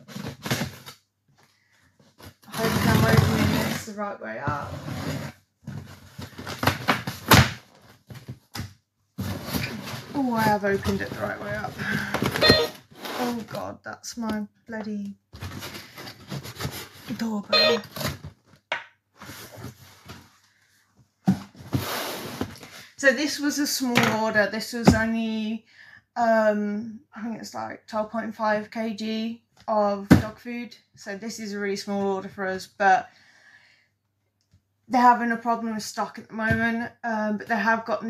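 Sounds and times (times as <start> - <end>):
box scraping and rustling: 2.1 - 8.5, 9.2 - 13.6, 15.4 - 18.5, 19.2 - 20.4, 21.3 - 22.9.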